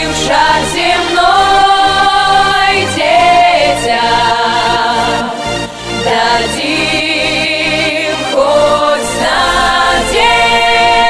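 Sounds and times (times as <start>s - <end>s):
voices singing with vibrato: 0.0s - 11.0s.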